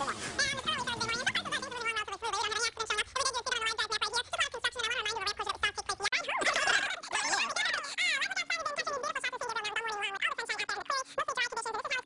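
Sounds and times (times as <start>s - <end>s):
sped-up high-pitched speech: 0.0s - 12.0s.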